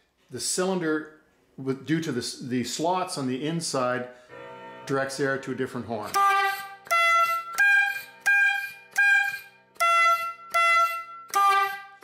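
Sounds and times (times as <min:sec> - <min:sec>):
bulb horn tooting: 0:06.0 - 0:12.0.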